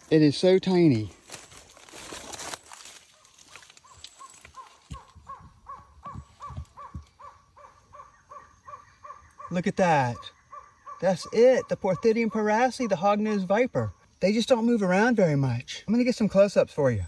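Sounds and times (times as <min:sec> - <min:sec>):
rustle: 0:00.9 - 0:07.2
bird calling repeated notes: 0:03.1 - 0:13.6.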